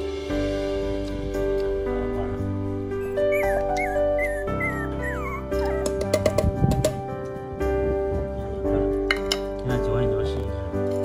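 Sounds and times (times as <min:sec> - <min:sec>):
soft background music: 0:00.0 - 0:11.0
puppies whimpering: 0:02.9 - 0:06.3.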